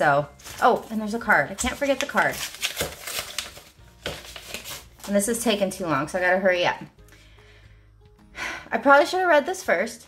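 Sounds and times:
paper rustling: 0.3s - 5.6s.

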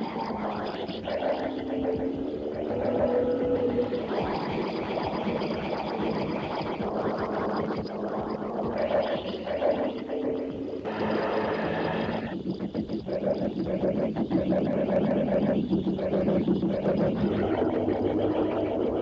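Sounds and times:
wavering tones: 0.0s - 19.0s
churning noise music: 0.2s - 5.3s, 16.0s - 19.0s.

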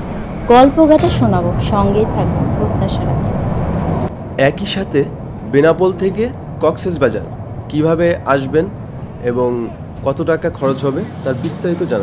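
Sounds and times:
passenger train running: 0.0s - 12.0s.

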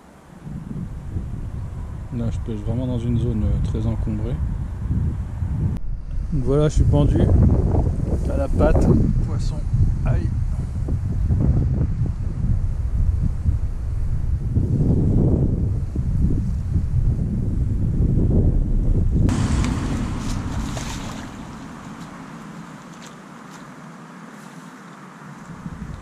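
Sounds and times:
wind buffeting microphone: 0.3s - 23.4s, 25.4s - 26.0s
water splashes: 19.3s - 23.8s.

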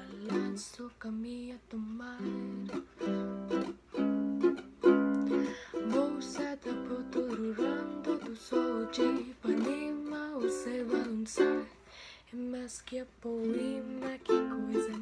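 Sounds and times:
ukulele strumming: 0.0s - 0.9s, 2.0s - 11.7s, 13.4s - 15.0s
woman singing: 0.0s - 3.7s, 5.1s - 15.0s.

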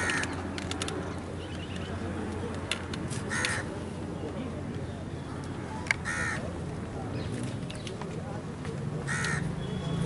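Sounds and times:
crow cawing: 0.0s - 0.4s, 3.3s - 3.7s, 6.0s - 6.4s, 9.1s - 9.5s.

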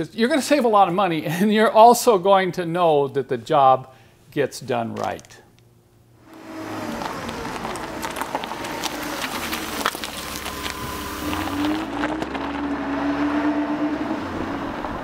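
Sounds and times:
vehicle engine running: 6.2s - 15.0s.

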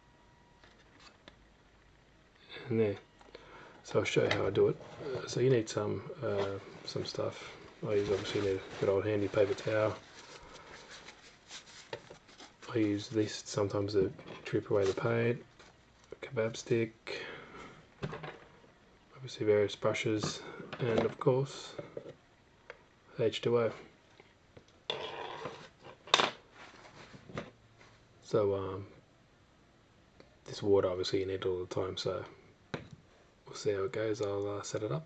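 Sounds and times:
paper towel rustling: 6.2s - 14.0s, 14.6s - 15.8s.

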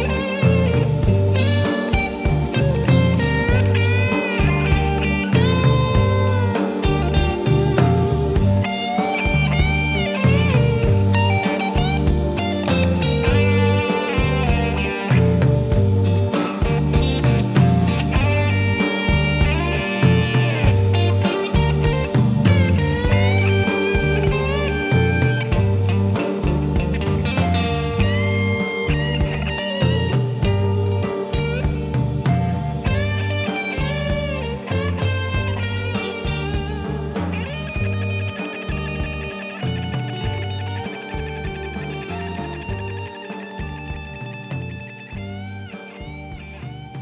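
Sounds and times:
drums and bass: 0.0s - 47.0s
electric guitar lead lines: 0.0s - 47.0s.

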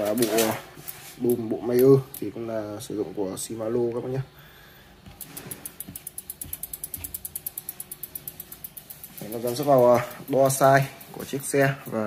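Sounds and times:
bicycle freehub clicking: 5.0s - 12.0s.

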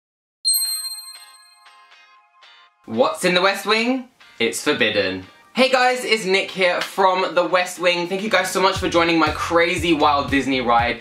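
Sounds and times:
bright chime ringing: 0.5s - 2.6s
soft music notes: 1.7s - 11.0s.

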